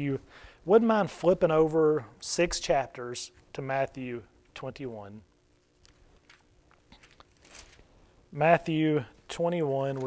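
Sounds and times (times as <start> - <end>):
thin pages being turned: 5.8 - 7.9.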